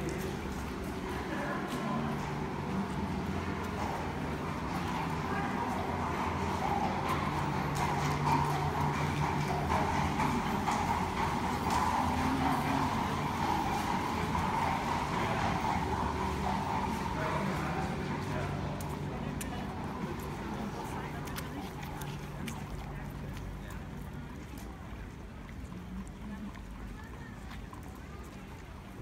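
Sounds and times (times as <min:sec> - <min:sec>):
horse hooves on paving: 0:00.0 - 0:29.0
people's voices: 0:00.0 - 0:29.0.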